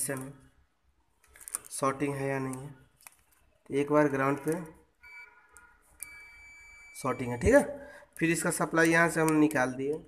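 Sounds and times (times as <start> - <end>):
multimeter continuity buzzer beeping: 5.0 - 5.4, 6.0 - 7.6.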